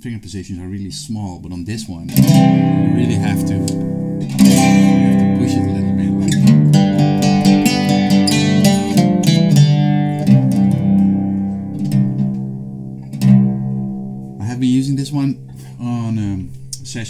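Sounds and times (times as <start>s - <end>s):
struck string chord ringing: 2.1s - 16.2s
plucked low string notes: 2.1s - 16.8s.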